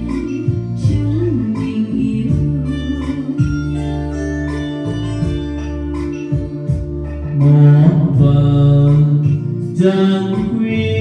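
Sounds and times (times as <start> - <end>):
karaoke backing track: 0.0 - 11.0
man singing low notes: 7.1 - 11.0.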